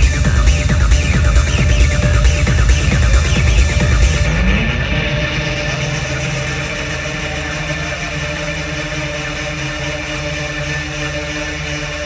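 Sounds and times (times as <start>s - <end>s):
electronic dance music in a club: 0.0s - 12.0s.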